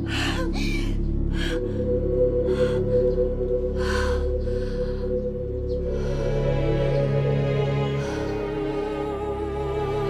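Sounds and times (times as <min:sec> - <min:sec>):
background music held notes: 0:00.0 - 0:10.0.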